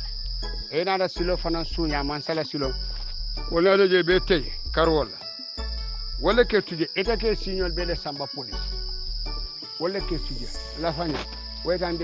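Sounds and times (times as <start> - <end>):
low background music: 0.0 - 12.0
man talking: 0.7 - 2.8, 3.5 - 5.2, 6.2 - 8.7, 9.8 - 12.0.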